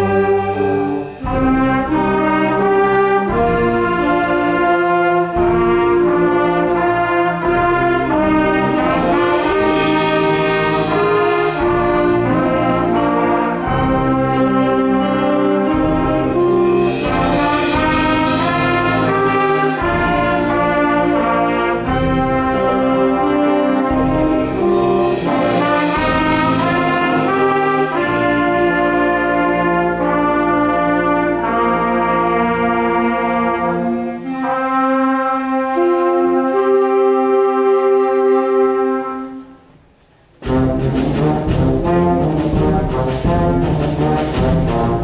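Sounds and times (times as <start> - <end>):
percussion hits: 0.0 - 30.8, 40.4 - 45.0
concert band playing: 0.0 - 45.0.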